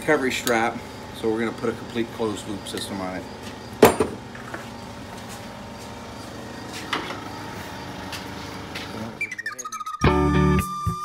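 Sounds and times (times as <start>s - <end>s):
guitar music: 9.1s - 11.0s.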